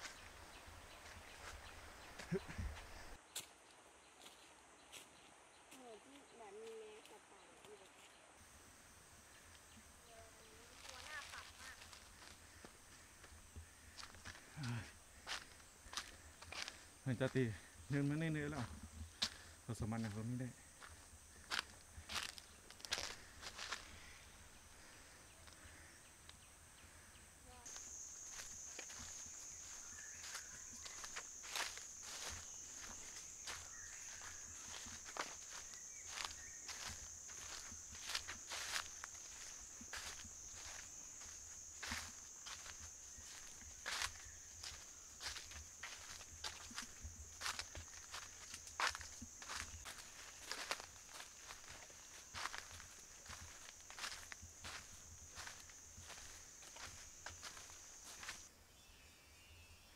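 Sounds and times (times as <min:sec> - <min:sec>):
footsteps on dry leaves: 0:10.7 - 0:13.0, 0:20.8 - 0:23.9, 0:27.7 - 0:58.5
high-pitched insect drone: 0:27.4 - 0:58.5.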